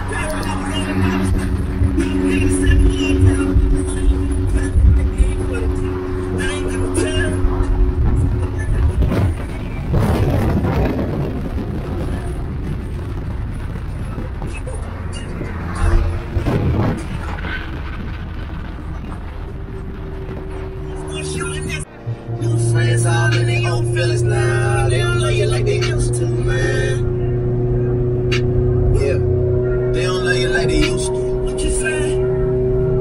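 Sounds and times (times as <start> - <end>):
voices in car cabin: 0.0 - 9.4, 14.0 - 16.3, 20.9 - 27.0, 28.3 - 29.3, 30.0 - 32.3
car road and engine noise: 0.0 - 33.0.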